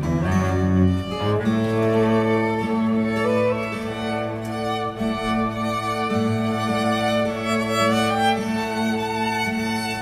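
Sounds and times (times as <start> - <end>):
classical guitar: 0.0 - 10.0
string ensemble playing: 0.0 - 10.0.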